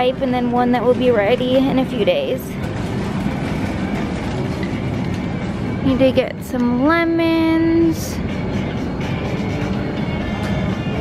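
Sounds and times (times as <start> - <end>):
shopping cart rattling: 0.1 - 6.3.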